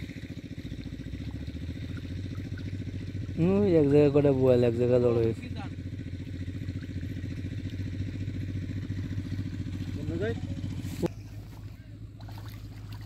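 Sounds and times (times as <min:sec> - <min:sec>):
small engine running: 0:00.0 - 0:13.0.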